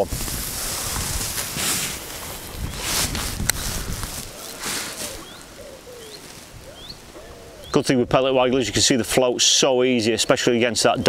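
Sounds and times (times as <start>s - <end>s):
wind buffeting microphone: 0.0s - 9.2s
birds chirping: 0.8s - 11.0s.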